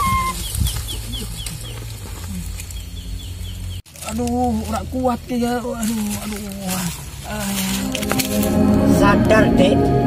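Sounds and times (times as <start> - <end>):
chickens clucking: 0.0 - 3.8
bamboo flute note: 7.6 - 10.0.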